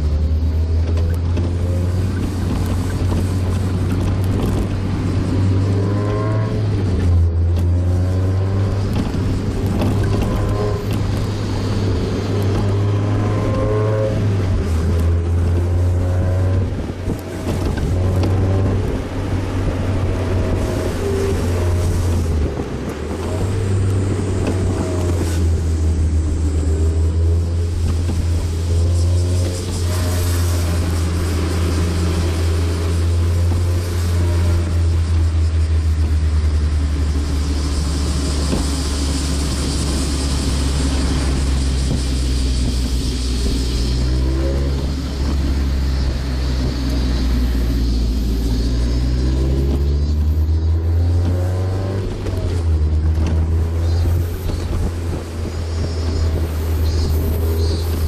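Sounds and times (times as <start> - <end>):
car engine and exhaust: 0.0 - 58.0
wind hiss: 0.0 - 58.0.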